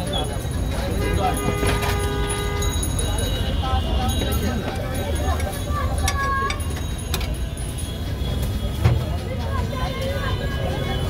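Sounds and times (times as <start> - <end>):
chatter of voices: 0.0 - 11.0
road traffic rumble: 0.0 - 11.0.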